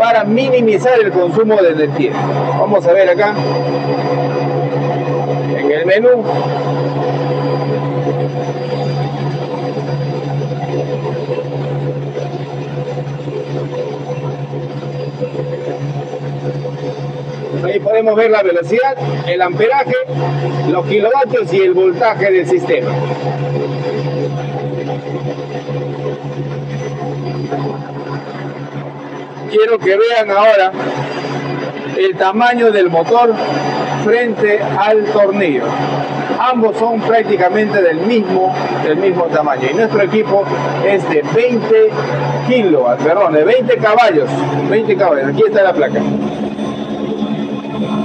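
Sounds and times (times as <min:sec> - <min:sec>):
air compressor droning: 0:00.0 - 0:48.0.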